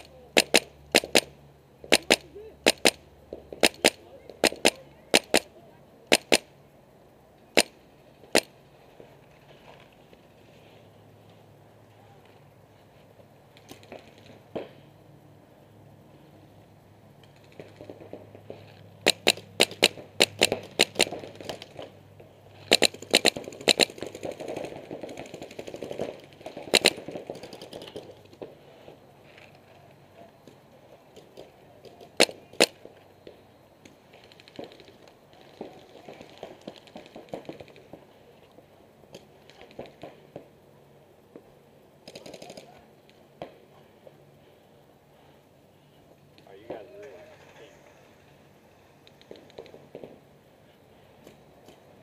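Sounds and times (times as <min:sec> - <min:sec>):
paintball markers firing: 0:00.0 - 0:06.5, 0:07.5 - 0:08.5, 0:17.3 - 0:22.0, 0:22.6 - 0:28.6, 0:30.4 - 0:38.0, 0:42.0 - 0:43.6, 0:49.0 - 0:50.2.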